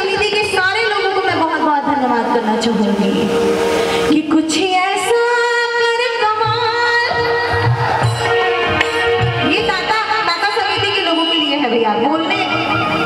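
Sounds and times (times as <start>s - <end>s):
woman singing into a microphone: 0.0s - 3.4s, 4.0s - 12.9s
musical accompaniment: 1.1s - 13.0s.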